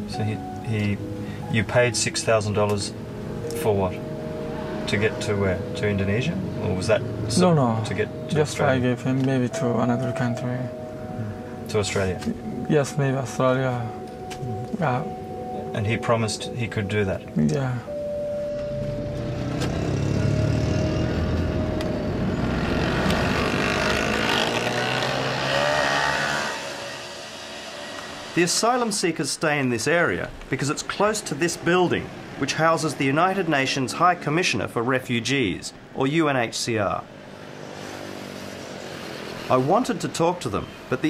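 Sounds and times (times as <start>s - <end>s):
street traffic: 0.0s - 41.0s
vehicle engines running: 2.5s - 14.6s, 18.4s - 29.0s
engine drone: 18.0s - 28.4s.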